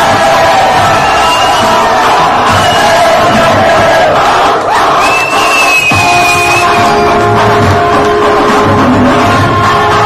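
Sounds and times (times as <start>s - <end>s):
audience cheering and shouting: 0.0s - 10.0s
loud dance music: 0.0s - 10.0s.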